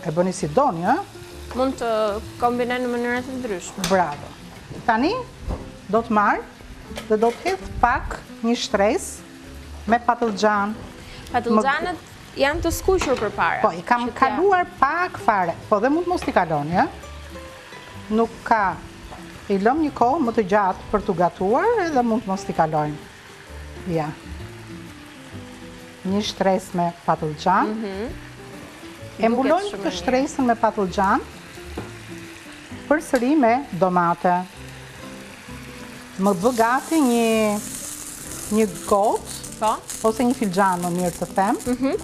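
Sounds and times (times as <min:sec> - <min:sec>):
food sizzling in pans: 0:00.0 - 0:42.0
person talking: 0:11.3 - 0:12.6, 0:13.7 - 0:14.6, 0:27.6 - 0:28.2, 0:29.2 - 0:30.4, 0:41.4 - 0:42.0.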